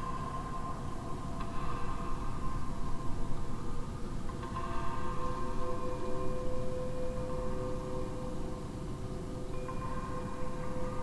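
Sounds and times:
low noisy background: 0.0 - 11.0.

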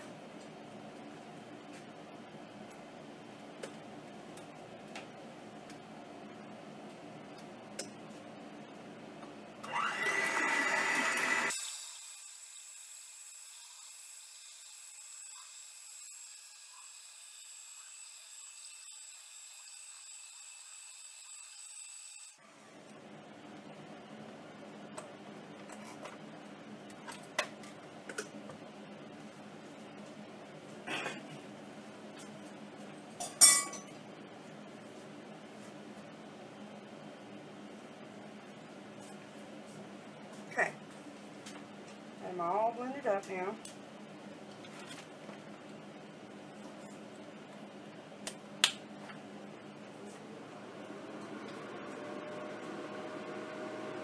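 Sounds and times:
electric hand mixer whining: 9.6 - 22.4, 50.4 - 54.0
kitchenware clinking: 33.2 - 34.0.

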